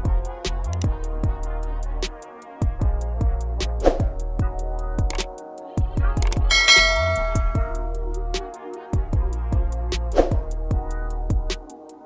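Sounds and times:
bright bell chime: 6.5s - 7.9s.

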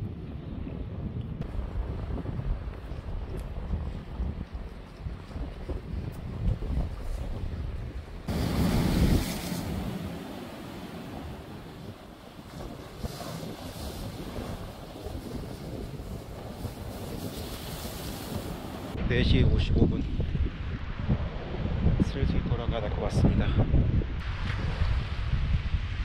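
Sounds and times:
wind buffeting microphone: 0.0s - 26.0s
sea waves breaking on concrete: 8.3s - 19.0s.

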